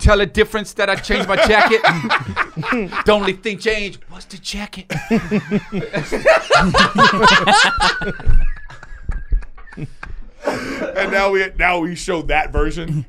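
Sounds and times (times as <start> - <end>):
men laughing: 1.0 - 3.5, 4.9 - 11.5
high held wheeze and breaths: 8.7 - 11.0.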